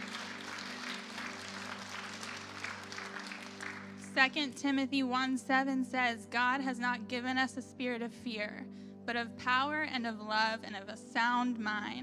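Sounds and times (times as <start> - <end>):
congregation applauding: 0.0 - 4.2
soft music of held chords: 0.0 - 12.0.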